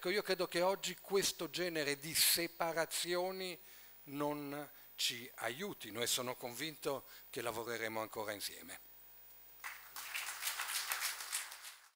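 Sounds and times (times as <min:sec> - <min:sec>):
audience applause: 0:09.6 - 0:11.9.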